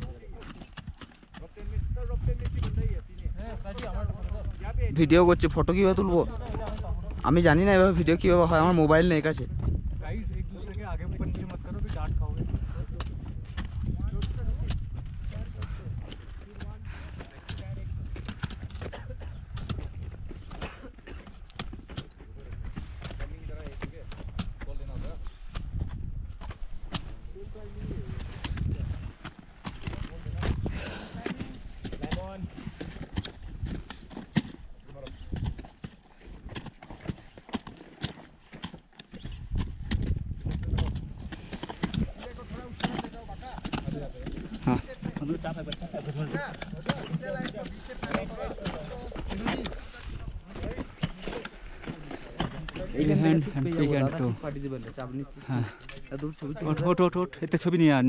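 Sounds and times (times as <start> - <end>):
wind rumble on microphone: 1.4 - 36.8, 39.2 - 54.7.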